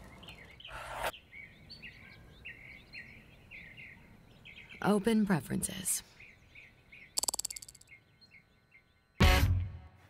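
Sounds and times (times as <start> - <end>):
faint birds chirping: 0.0 - 9.2
interface tick sounds: 7.2 - 7.9.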